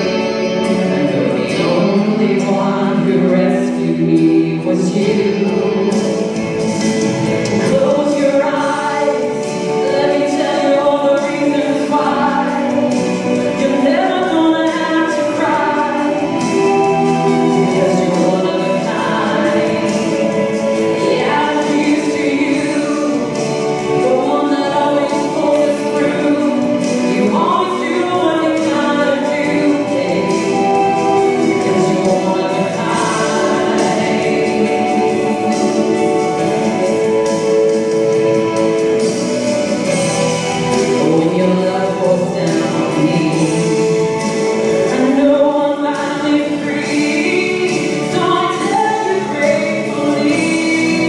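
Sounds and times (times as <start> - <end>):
woman singing slow song: 0.0 - 6.8, 7.5 - 37.7, 40.6 - 51.0.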